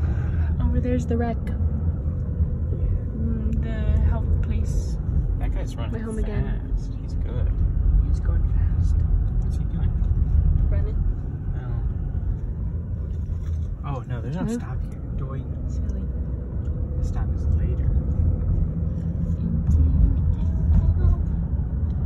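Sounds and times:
car road and engine rumble: 0:00.0 - 0:22.0.

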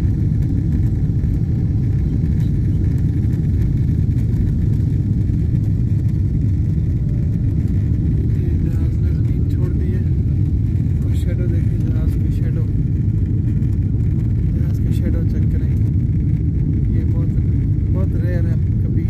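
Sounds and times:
jet engines at takeoff power: 0:00.0 - 0:19.0
wheels running on runway: 0:00.0 - 0:19.0.

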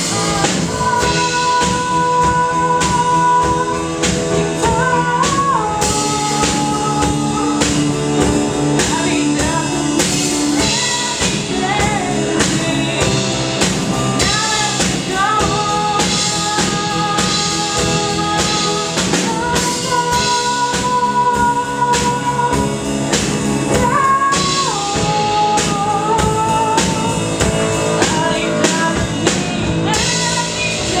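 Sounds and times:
drum kit: 0:00.0 - 0:31.0
electric guitar: 0:00.0 - 0:31.0
grand piano: 0:00.0 - 0:31.0.

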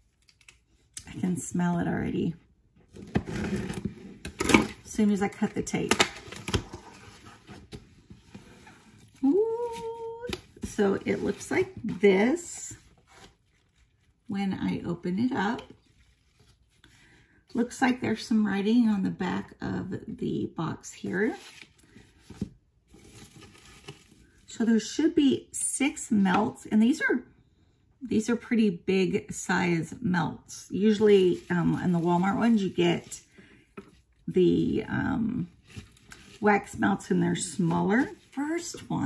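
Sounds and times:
paper shred rustling and crinkling: 0:30.9 - 0:33.3.

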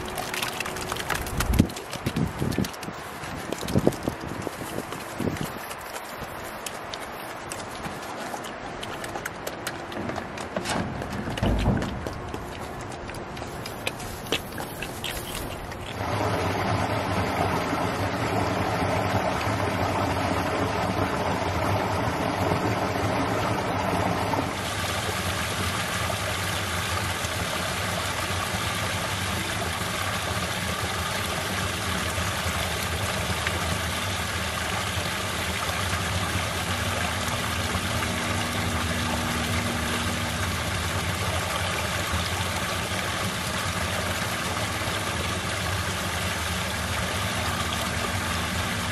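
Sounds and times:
waterfall splashing into pool: 0:00.0 - 0:10.0, 0:22.7 - 0:48.9
creek running over sand: 0:00.0 - 0:48.9.

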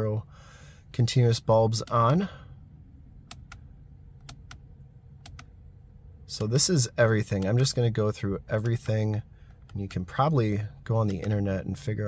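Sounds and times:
faint low rumble: 0:00.0 - 0:12.0
steering wheel button clicking: 0:03.2 - 0:03.6, 0:04.2 - 0:05.5.

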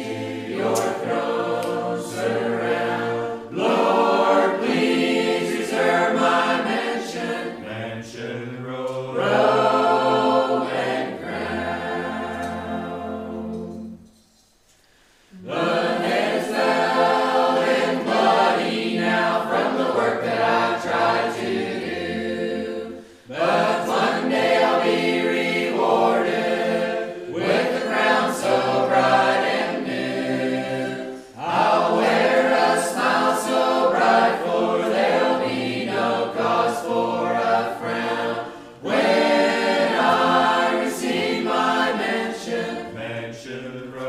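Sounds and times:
choir singing a cappella: 0:00.0 - 0:44.0.

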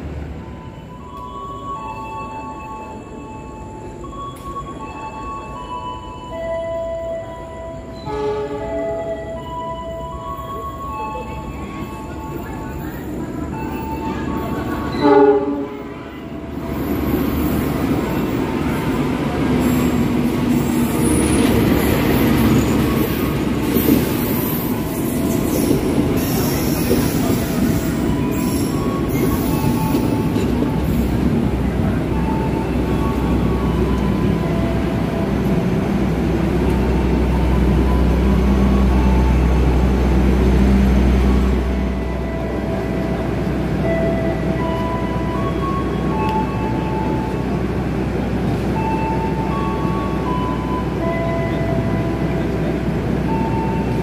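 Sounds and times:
train coaches rolling past: 0:00.0 - 0:54.0
train horn blast: 0:08.0 - 0:08.8, 0:14.9 - 0:16.4.

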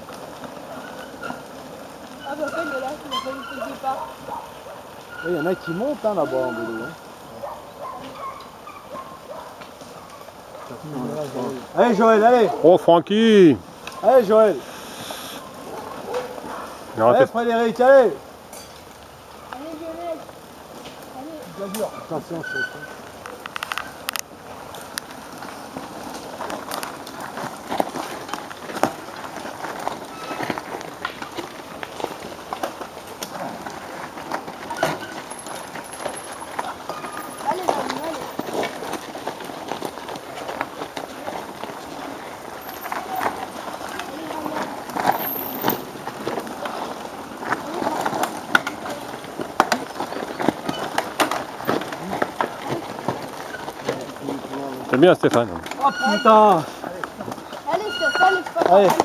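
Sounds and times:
bikes riding over leaves: 0:00.0 - 0:59.0.

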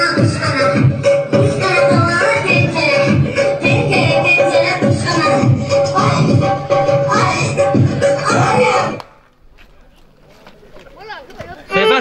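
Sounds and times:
people's voices: 0:00.0 - 0:09.0
low background murmur: 0:00.1 - 0:12.0.

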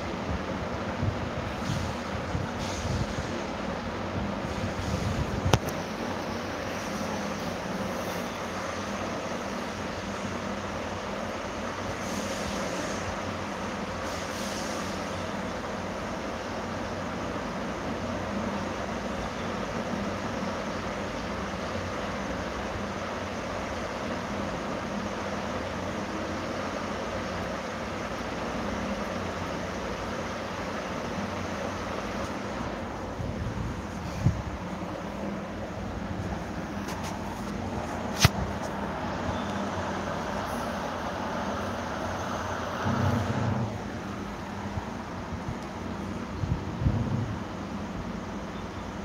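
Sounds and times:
steady hiss: 0:00.0 - 0:49.0.

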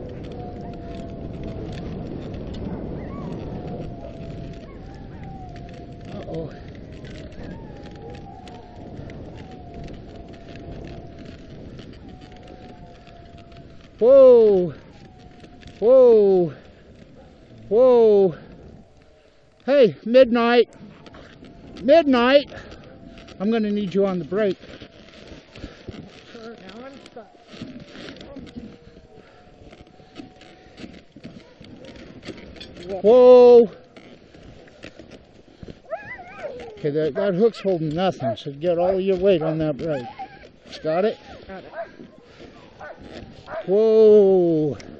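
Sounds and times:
sled dogs scuffling in snow: 0:00.0 - 0:17.8, 0:18.5 - 0:44.9
faint dog cries: 0:35.8 - 0:38.4, 0:39.4 - 0:43.8
sled runners hissing on snow: 0:39.2 - 0:44.8.

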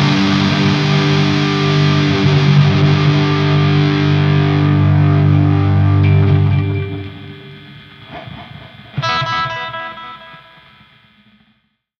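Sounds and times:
distorted electric guitar chord: 0:00.0 - 0:11.4.

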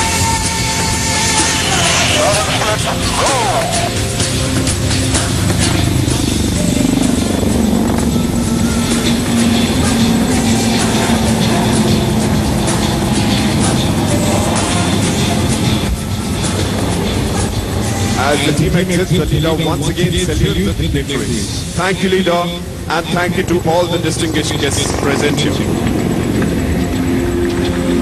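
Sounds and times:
helicopters flying past: 0:00.0 - 0:28.0.

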